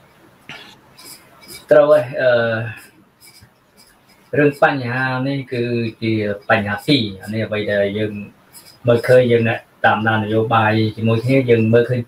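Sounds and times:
man speaking: 0:00.5 - 0:03.4, 0:04.3 - 0:12.0.

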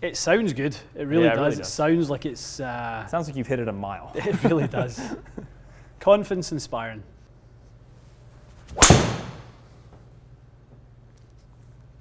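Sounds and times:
golf club striking ball: 0:08.8 - 0:09.6.

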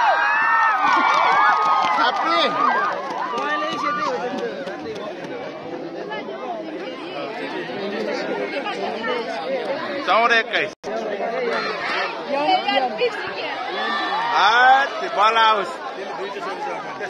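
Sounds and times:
crowd chattering: 0:00.0 - 0:17.0
people laughing: 0:00.7 - 0:02.7.

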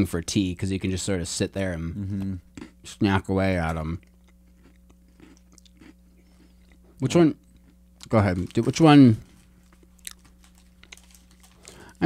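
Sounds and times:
person speaking: 0:08.0 - 0:09.4.

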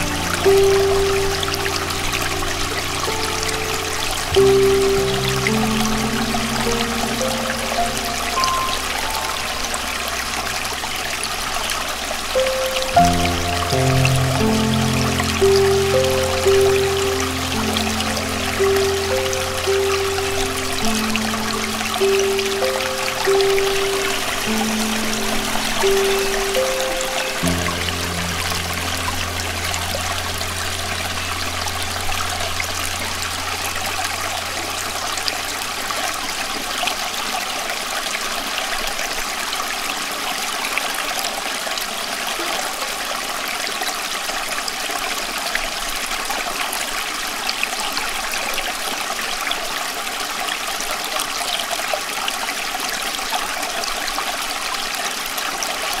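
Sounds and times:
low hum: 0:00.0 - 0:36.6
running water rushing: 0:00.0 - 0:56.0.

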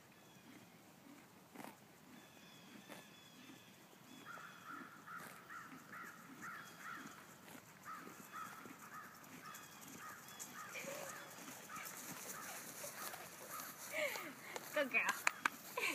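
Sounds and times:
faint animal calls: 0:02.2 - 0:14.1.

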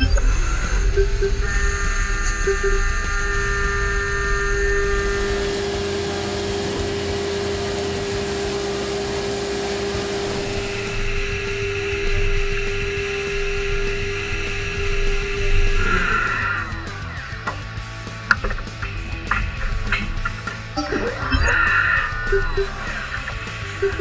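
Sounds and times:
higher machine tone: 0:00.0 - 0:17.4, 0:19.6 - 0:24.0
mill spindle whine: 0:00.0 - 0:17.6, 0:18.8 - 0:24.0
coolant spray and cutting noise: 0:04.8 - 0:17.6.

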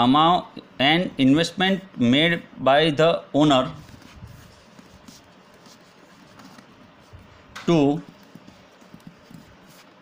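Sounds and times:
pen tapping on paper: 0:07.6 - 0:10.0.

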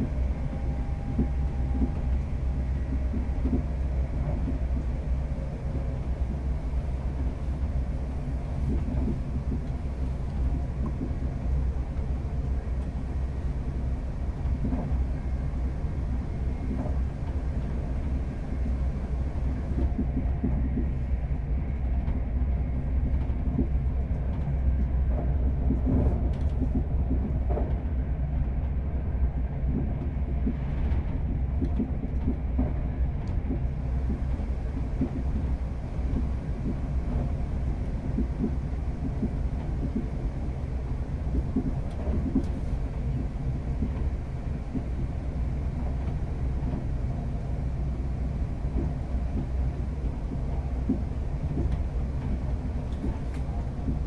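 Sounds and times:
train low rumble: 0:00.0 - 0:54.0.

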